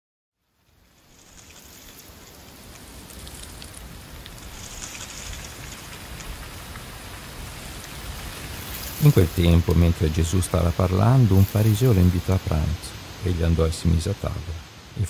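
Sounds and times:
steady rain hiss: 0.4s - 15.0s
rain drop ticks: 0.6s - 12.6s.

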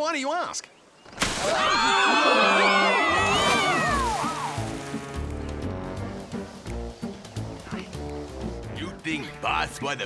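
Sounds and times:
cartoon characters screaming: 1.4s - 4.5s.

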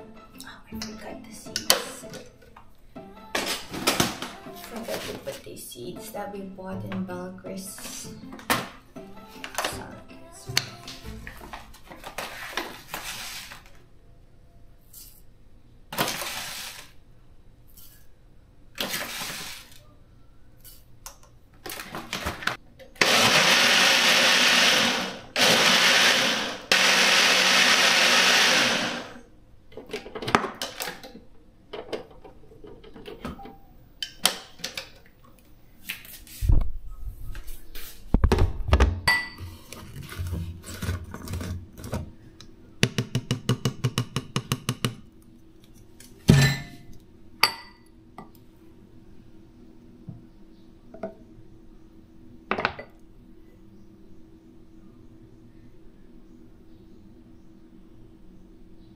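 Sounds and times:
blender running: 16.0s - 16.9s, 23.0s - 29.2s.

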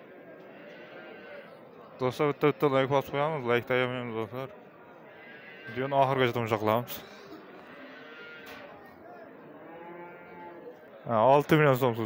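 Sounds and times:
farm animal call: 0.1s - 1.6s, 5.1s - 6.2s, 7.6s - 8.7s, 9.6s - 10.8s.

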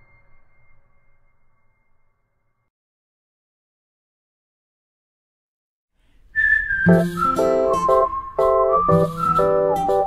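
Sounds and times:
high whistled note: 6.4s - 10.0s
backing music chords: 6.9s - 10.0s.

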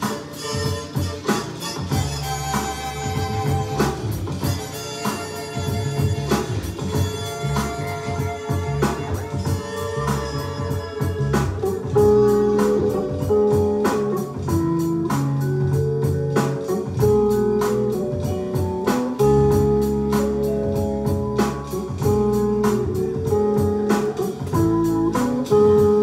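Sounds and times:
drum beat: 0.0s - 26.0s
held bass and chord notes: 0.0s - 26.0s
looped instrumental music: 0.0s - 26.0s.

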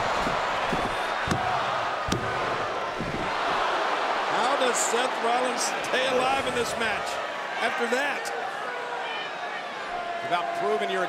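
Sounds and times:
sharp thuds: 0.0s - 3.5s
arena crowd noise: 0.0s - 11.0s.

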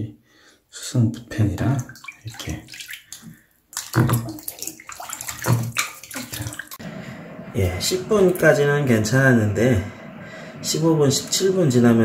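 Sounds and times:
bathwater sloshing and splashing: 1.6s - 6.8s.

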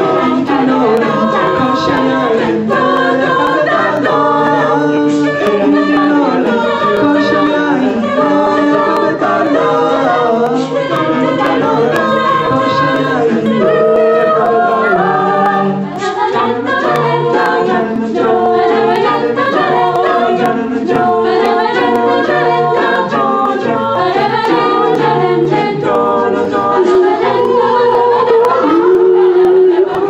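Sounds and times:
vocal group singing in harmony: 0.0s - 30.0s.

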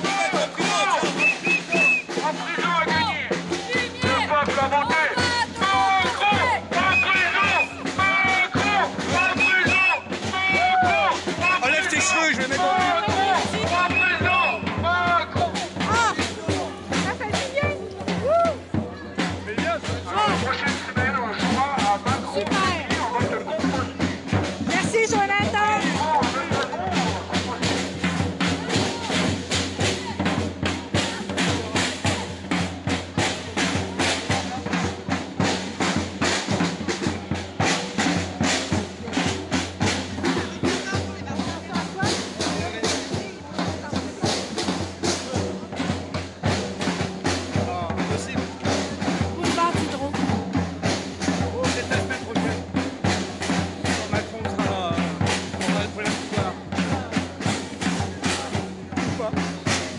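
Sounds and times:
voices over music: 0.0s - 17.8s
music with fast drum beat: 0.0s - 59.9s.

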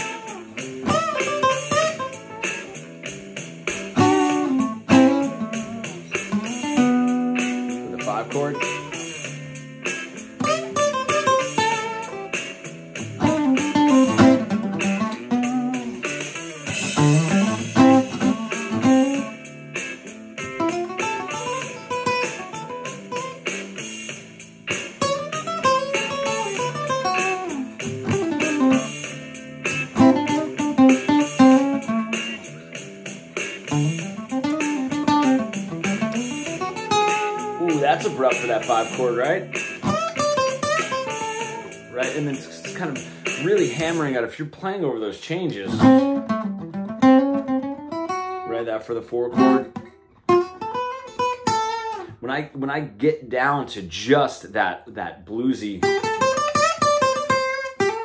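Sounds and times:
acoustic guitar blues lead: 0.0s - 52.3s, 55.6s - 58.0s.

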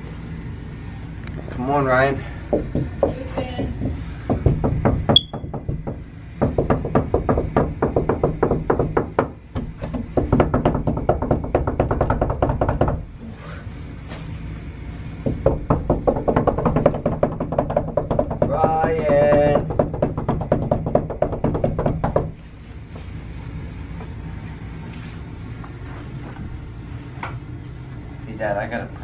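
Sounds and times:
fists pounding on a door: 2.5s - 13.1s, 15.2s - 22.4s.

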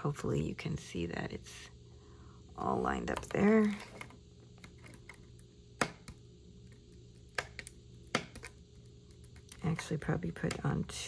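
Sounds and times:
card and plastic crackling clicks: 3.1s - 9.8s.

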